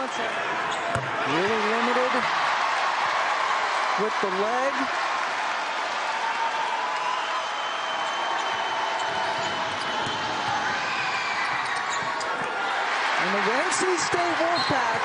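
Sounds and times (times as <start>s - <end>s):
arena crowd noise: 0.0s - 15.0s.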